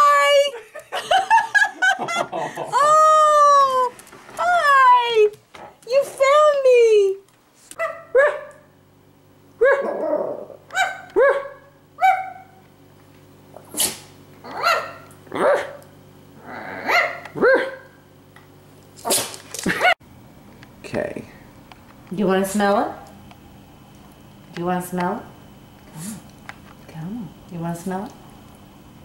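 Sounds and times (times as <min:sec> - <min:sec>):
steady low hum: 0:00.0 - 0:29.0
small dog barking: 0:07.8 - 0:08.7, 0:09.6 - 0:10.0, 0:10.7 - 0:12.6, 0:14.5 - 0:15.8, 0:16.8 - 0:18.0.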